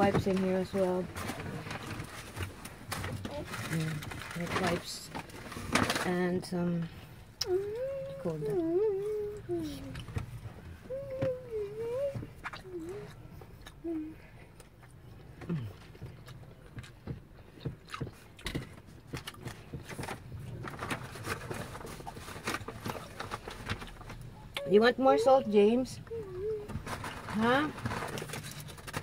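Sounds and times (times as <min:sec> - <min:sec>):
paper bag rustling: 0:00.0 - 0:06.4, 0:19.8 - 0:24.3, 0:26.5 - 0:29.0
person humming mm: 0:13.8 - 0:14.3.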